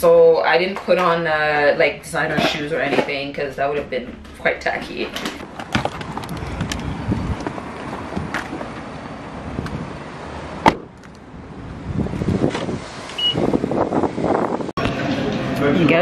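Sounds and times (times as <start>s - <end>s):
low steady car rumble: 2.1s - 16.0s.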